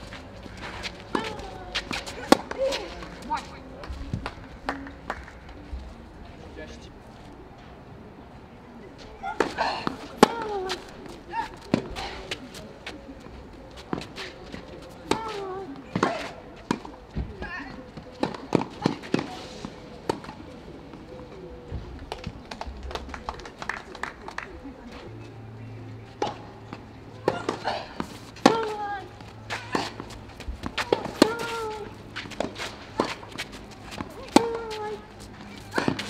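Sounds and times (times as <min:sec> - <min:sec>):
footsteps on clay: 0:00.0 - 0:04.4, 0:26.6 - 0:36.0
tennis ball struck by racket: 0:00.5 - 0:03.2, 0:18.2 - 0:20.4, 0:26.2 - 0:35.0, 0:35.6 - 0:36.0.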